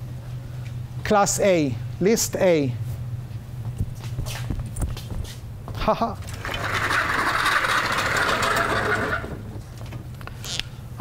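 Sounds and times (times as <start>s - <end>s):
casters rolling across floor: 6.2s - 9.8s.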